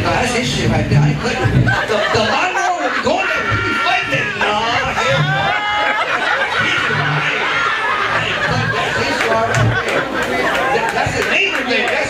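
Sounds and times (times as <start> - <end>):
man talking into a microphone: 0.0 - 5.6, 6.5 - 10.0, 10.6 - 12.0
chatter of voices: 0.0 - 12.0.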